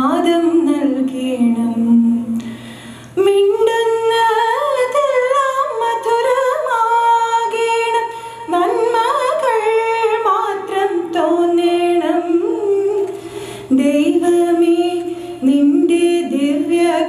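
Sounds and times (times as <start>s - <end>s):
woman singing prayer: 0.0s - 2.4s, 3.2s - 17.0s.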